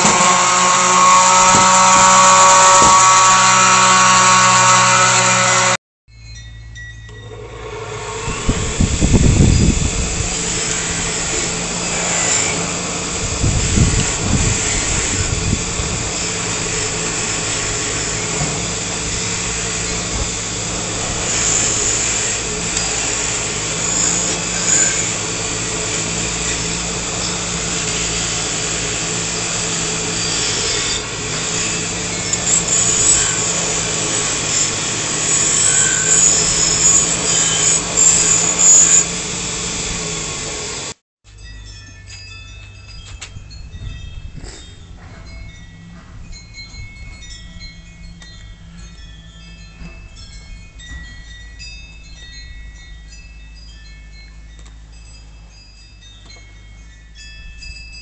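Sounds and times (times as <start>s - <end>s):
bench grinder motor hum: 0.0s - 5.8s, 7.1s - 41.0s
wire wheel scratching metal: 0.0s - 5.8s, 7.0s - 39.8s
light metal clinks: 41.3s - 58.0s.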